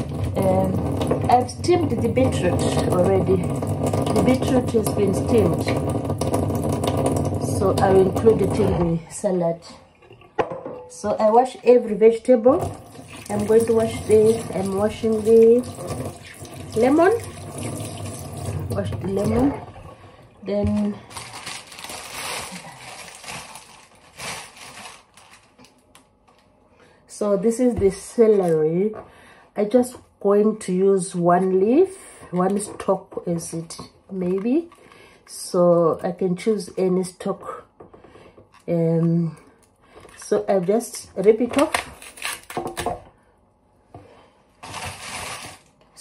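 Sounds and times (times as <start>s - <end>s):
tap water running into sink: 0.0s - 8.9s, 12.5s - 20.8s
vegetables clicking and rustling: 20.5s - 26.5s, 44.6s - 46.0s.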